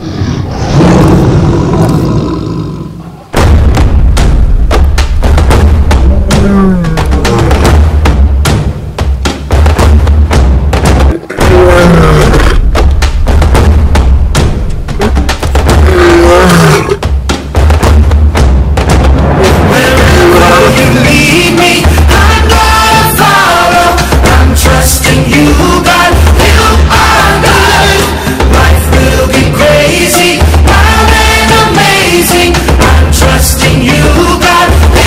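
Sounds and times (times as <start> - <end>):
lion roaring: 0.0 - 3.3, 6.0 - 7.8, 11.1 - 12.6, 15.7 - 17.0.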